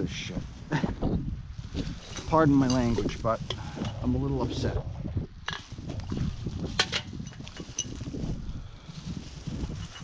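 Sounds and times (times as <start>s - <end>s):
plastic bag rustling: 5.6s - 10.0s
footsteps crunching through leaves: 7.6s - 10.0s.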